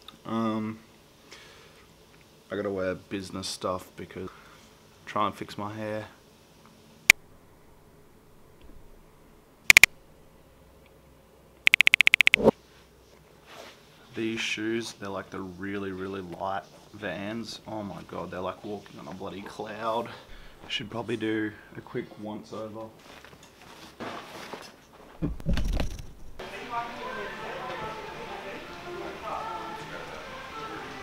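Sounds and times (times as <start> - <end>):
sharp clicks: 11.7 - 12.5.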